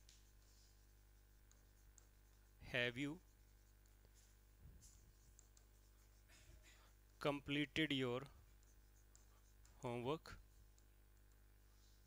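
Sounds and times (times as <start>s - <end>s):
low electrical hum: 0.0s - 12.0s
stylus scratching on display: 0.0s - 12.0s.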